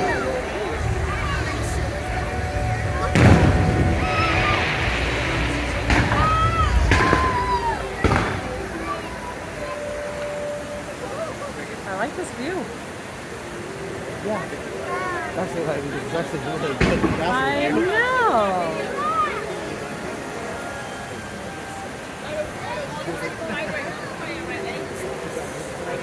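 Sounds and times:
show music: 0.0 - 22.0
voices: 0.0 - 26.0
fireworks banging: 2.8 - 8.8, 16.7 - 17.6.

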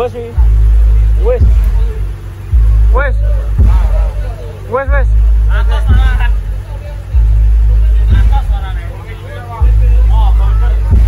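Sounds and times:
deep heavy booms: 0.4 - 9.0, 9.6 - 11.0
man shouting: 2.8 - 7.2.

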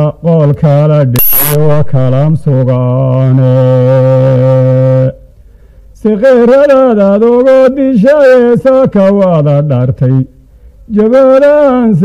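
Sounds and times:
man chanting: 0.0 - 5.2, 6.0 - 10.3, 10.9 - 12.0.

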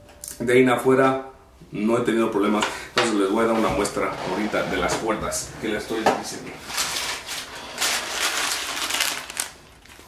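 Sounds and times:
paper packet rustling and crinkling: 6.6 - 10.0.

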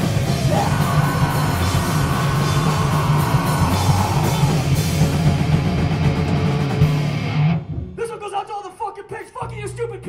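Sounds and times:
punk rock band playing live: 0.0 - 7.9.

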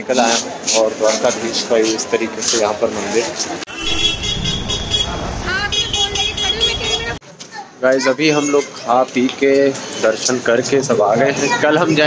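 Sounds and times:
crowd voices: 2.9 - 7.4
short horn toots: 3.7 - 7.2.

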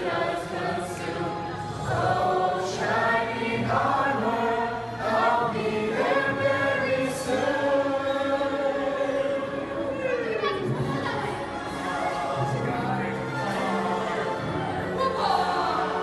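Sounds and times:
group of voices singing: 0.0 - 16.0.

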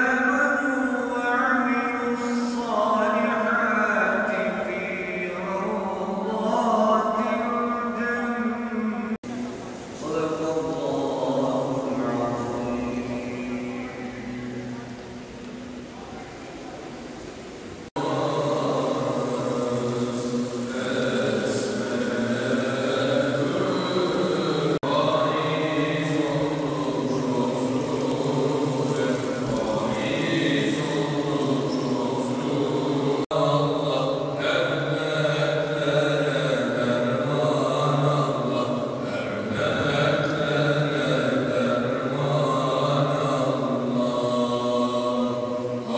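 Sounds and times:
person chanting long wavering lines: 0.0 - 17.0, 17.9 - 45.9.

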